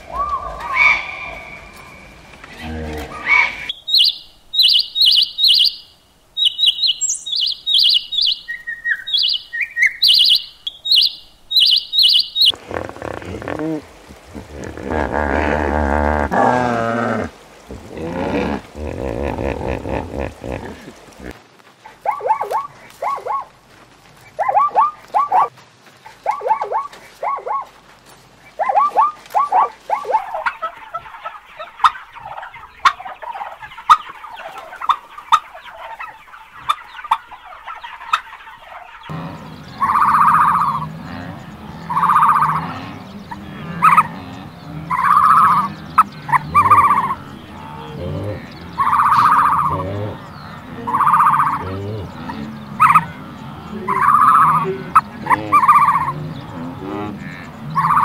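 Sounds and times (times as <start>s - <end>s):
turkeys gobbling: 0.0s - 2.0s, 17.6s - 27.8s, 28.5s - 58.0s.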